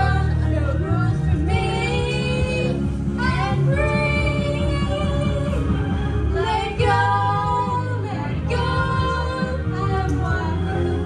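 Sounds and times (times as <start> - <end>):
karaoke backing track: 0.0 - 11.0.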